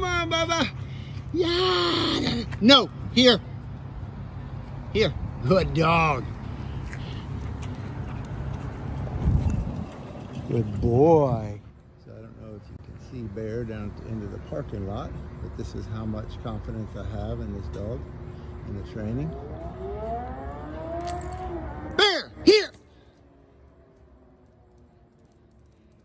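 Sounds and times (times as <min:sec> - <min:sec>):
low traffic rumble: 0:00.0 - 0:26.0
dog paws on concrete: 0:06.2 - 0:10.8
car engine passing: 0:17.3 - 0:25.5.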